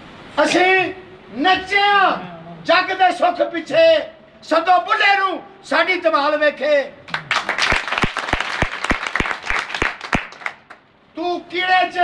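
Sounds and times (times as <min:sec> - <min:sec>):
hands clapping close by: 0:07.1 - 0:10.8
small group applauding: 0:07.1 - 0:10.9.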